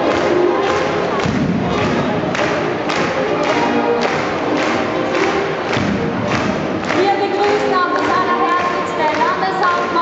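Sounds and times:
brass band playing a march: 0:00.0 - 0:07.0
heavy thumping drum beats: 0:01.0 - 0:02.6, 0:05.6 - 0:08.3.

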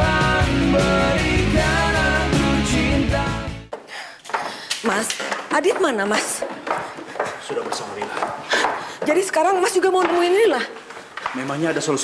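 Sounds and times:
footsteps down a staircase: 0:03.7 - 0:12.0.

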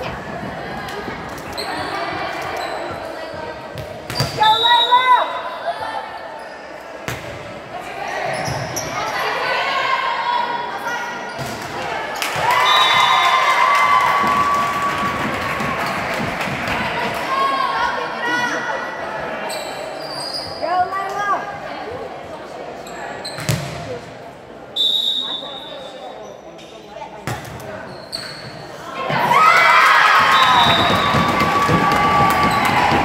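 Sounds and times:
shouting and cheering: 0:11.9 - 0:18.6, 0:29.0 - 0:33.0.

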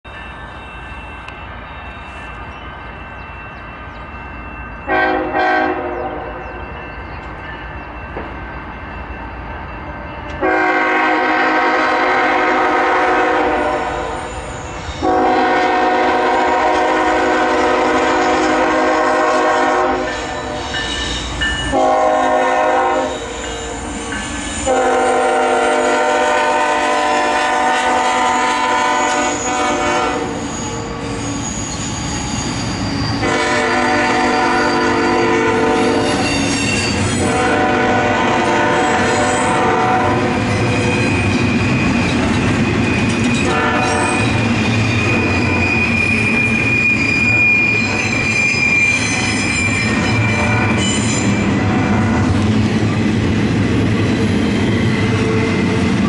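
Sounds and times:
train wheels squealing: 0:00.0 - 0:10.7, 0:13.5 - 0:26.0, 0:28.5 - 0:37.6, 0:38.6 - 0:53.2, 0:53.8 - 0:56.0
locomotive air horn blasts: 0:04.9 - 0:06.4, 0:10.4 - 0:14.3, 0:15.0 - 0:20.6, 0:21.7 - 0:23.8, 0:24.6 - 0:30.4, 0:33.2 - 0:36.3, 0:37.2 - 0:40.4, 0:43.4 - 0:44.3, 0:50.2 - 0:52.2.

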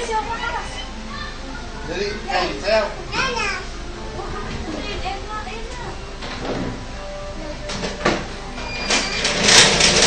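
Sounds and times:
young children talking and calling: 0:00.0 - 0:08.0.

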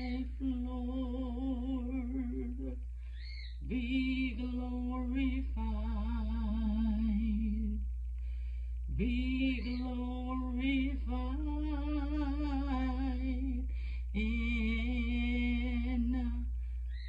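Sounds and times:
person singing unaccompanied: 0:00.0 - 0:08.2, 0:08.8 - 0:17.0.

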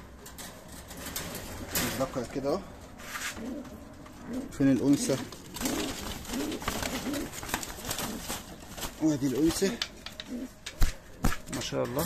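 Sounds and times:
wire cage clicks and knocks: 0:00.1 - 0:02.3
pigeons cooing: 0:03.0 - 0:10.8.

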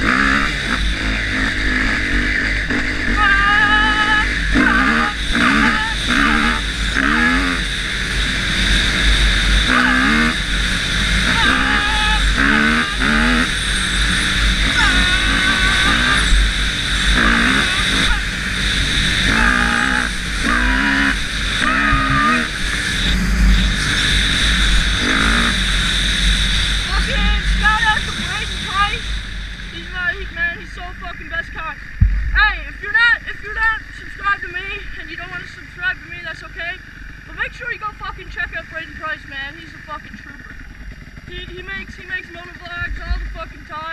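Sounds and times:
dirt bike engine revving: 0:00.0 - 0:43.9
wind noise on microphone: 0:32.0 - 0:32.5.

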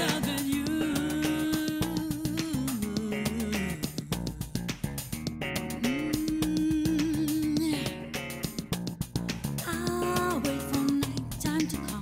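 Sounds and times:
bass guitar plucked notes: 0:00.0 - 0:12.0
guitar plucked notes: 0:00.0 - 0:12.0.

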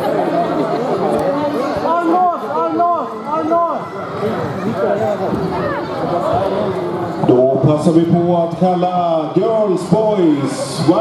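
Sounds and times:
voices shouting and chattering: 0:00.0 - 0:11.0
loud drawn-out shouts: 0:01.5 - 0:07.2.

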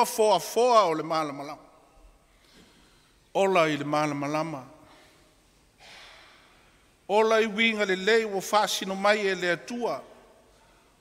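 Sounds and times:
man speaking: 0:00.0 - 0:01.8, 0:03.3 - 0:04.8, 0:07.1 - 0:10.3.

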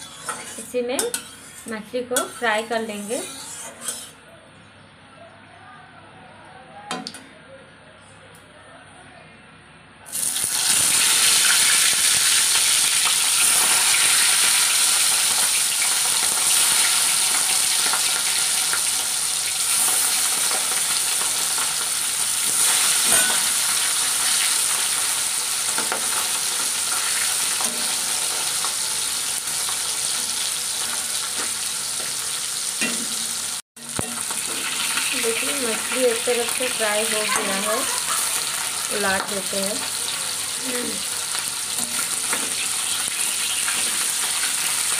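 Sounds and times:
fish sizzling in hot oil: 0:10.1 - 0:44.9.

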